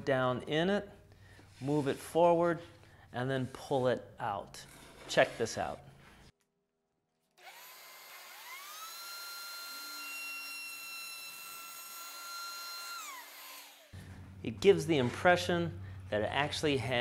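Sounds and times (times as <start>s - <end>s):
router cutting wooden board: 7.4s - 13.9s
router motor whining: 7.4s - 14.1s.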